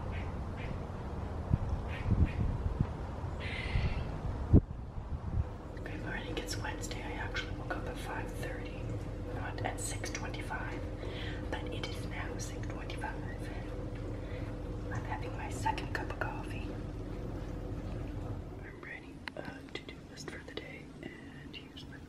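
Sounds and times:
low hum: 0.0 - 22.0
person whispering: 18.6 - 22.0.

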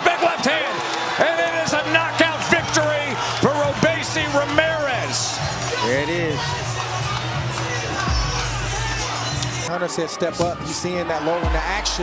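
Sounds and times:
excited voices shouting: 0.0 - 12.0
background music with low bass: 1.5 - 9.7, 11.4 - 12.0.

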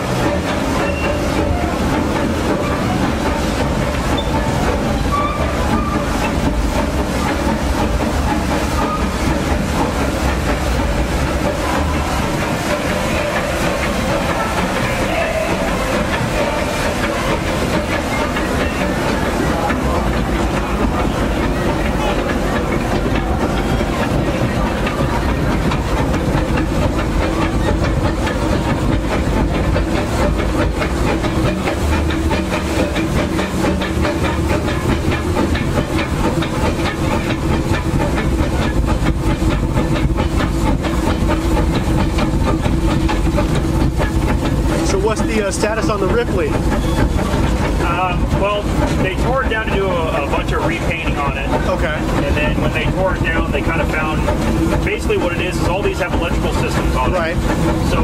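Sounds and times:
steady hum: 0.0 - 58.0
wheels clattering on rails: 0.0 - 58.0.

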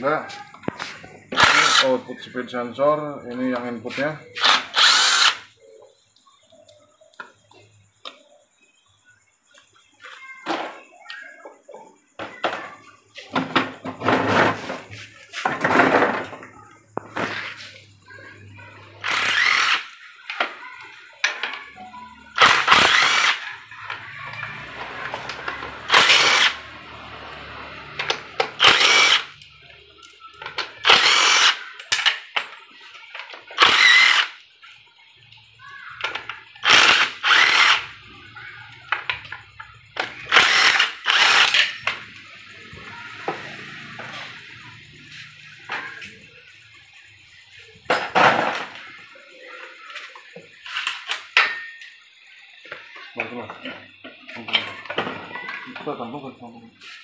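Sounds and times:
cordless impact wrench bursts: 1.3 - 2.0, 4.4 - 5.5, 19.0 - 20.0, 22.4 - 23.5, 25.8 - 26.7, 28.0 - 29.4, 30.8 - 31.6, 33.6 - 34.4, 36.6 - 38.0, 40.3 - 41.9.

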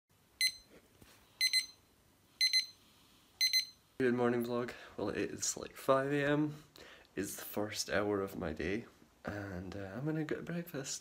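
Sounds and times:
alarm clock beeping: 0.4 - 0.7, 1.4 - 1.8, 2.4 - 2.8, 3.4 - 3.8.

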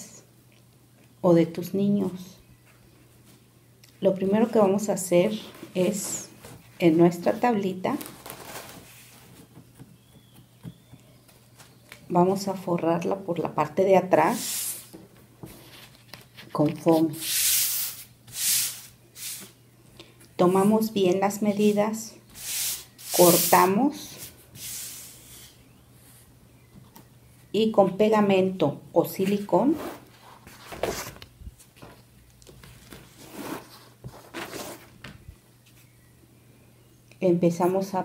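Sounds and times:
hand rubbing craft foam: 16.8 - 19.6, 21.5 - 25.6.

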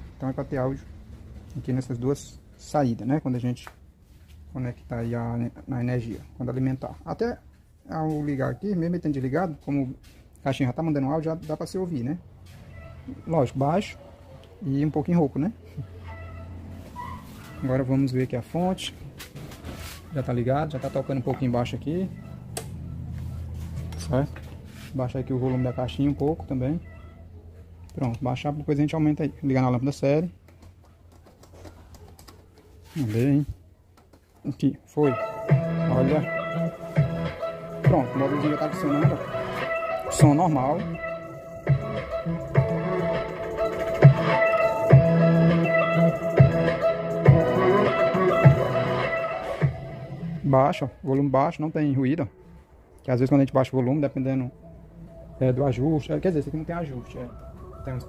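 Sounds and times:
guitar music with steady beat: 35.2 - 50.0.

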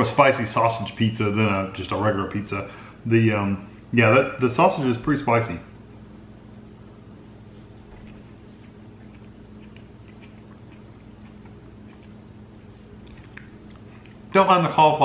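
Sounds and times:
steady low hum: 0.0 - 15.0
faint chewing: 6.5 - 14.3
soft mouth clicks: 7.9 - 12.2, 13.0 - 14.2.

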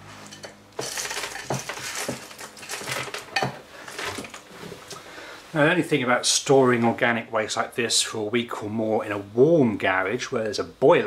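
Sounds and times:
scraps clattering into plastic bin: 0.3 - 4.4.

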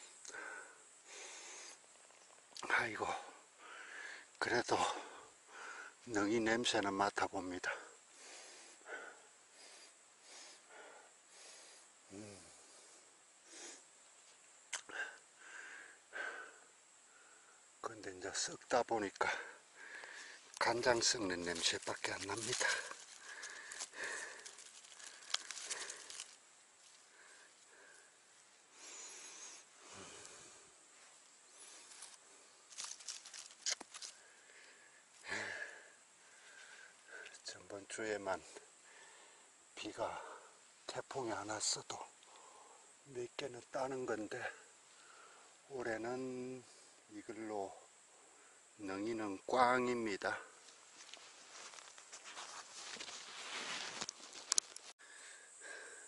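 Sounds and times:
twigs clicking: 20.0 - 27.1, 31.7 - 34.3, 51.0 - 54.9
dry leaves rustling: 20.0 - 27.8, 31.6 - 34.3, 50.7 - 54.9.

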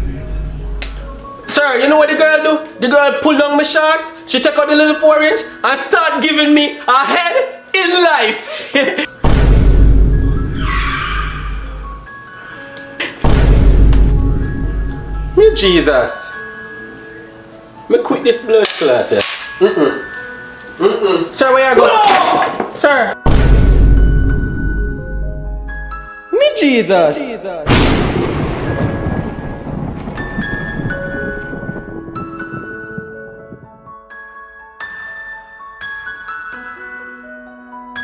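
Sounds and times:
bass-heavy music: 0.0 - 1.3, 13.3 - 15.4
screeching noise: 10.5 - 11.8
thunder-like rumbling: 27.7 - 33.9.

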